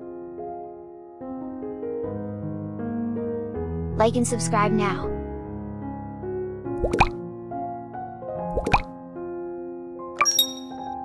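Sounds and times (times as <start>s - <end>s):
gentle background music: 0.0s - 11.0s
rising pop sound effects: 6.8s - 7.2s, 8.5s - 8.9s, 10.2s - 10.7s.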